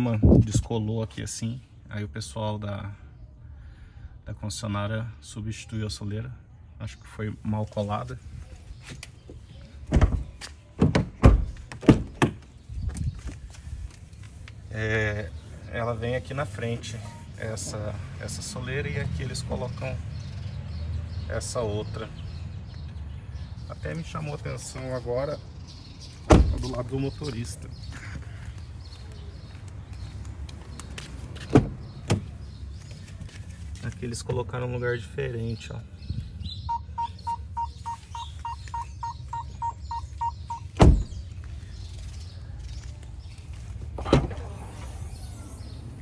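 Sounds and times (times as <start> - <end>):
footsteps beside car: 7.7 - 14.7, 26.1 - 34.4, 37.1 - 44.5
car door opening: 26.3 - 26.8, 31.4 - 32.3, 40.7 - 41.2, 43.9 - 45.6
car door latch clicks: 40.8 - 41.1.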